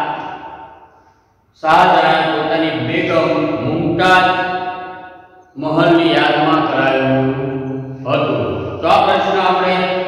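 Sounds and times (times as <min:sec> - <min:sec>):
man chanting: 0:01.6 - 0:04.7, 0:05.6 - 0:10.0.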